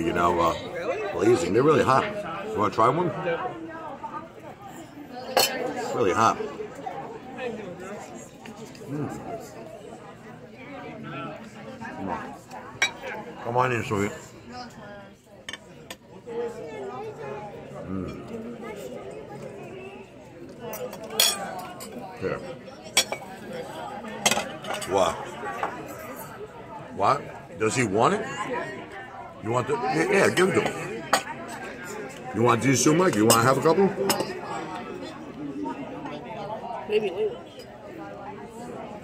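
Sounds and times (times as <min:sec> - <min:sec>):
murmur of diners' voices: 0:00.0 - 0:39.0
tableware clink: 0:05.3 - 0:05.7, 0:12.8 - 0:13.2, 0:20.7 - 0:22.0, 0:22.9 - 0:23.4, 0:33.1 - 0:34.4
dishes and cutlery clinking: 0:05.3 - 0:05.9, 0:12.8 - 0:13.2, 0:20.7 - 0:22.0, 0:22.9 - 0:26.3, 0:30.4 - 0:32.0, 0:33.0 - 0:34.4.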